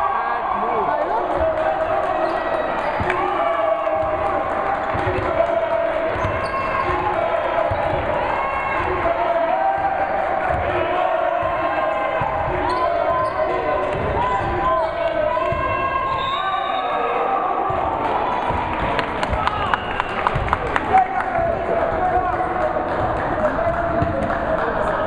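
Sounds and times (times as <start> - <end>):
sneakers squeaking: 2.2 - 3.2, 6.1 - 7.0, 7.6 - 8.7, 11.3 - 20.6.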